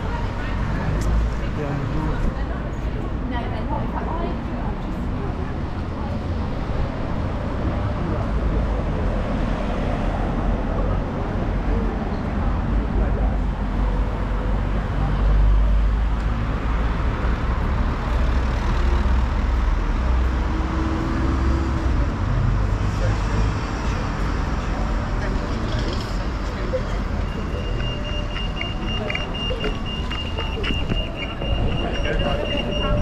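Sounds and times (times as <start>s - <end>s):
chatter of passers-by: 0.0s - 33.0s
road traffic rumble: 0.0s - 33.0s
crossing signal high tone: 27.3s - 33.0s.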